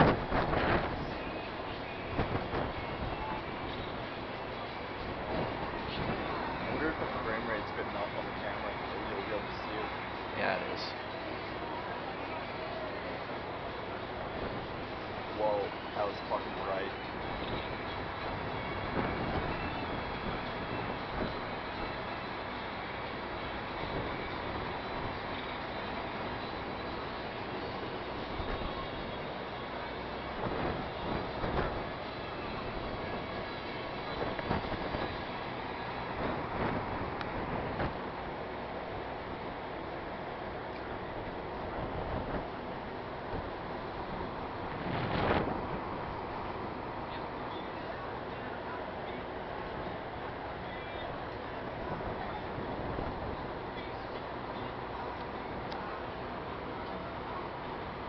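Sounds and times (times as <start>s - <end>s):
rolling thunder rumble: 0.0s - 7.7s.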